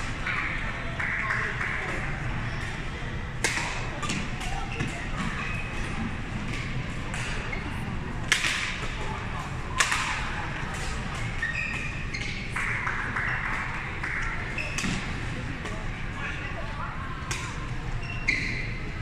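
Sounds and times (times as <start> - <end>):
rackets hitting shuttlecock: 3.4 - 5.0, 8.3 - 9.0, 9.7 - 15.8.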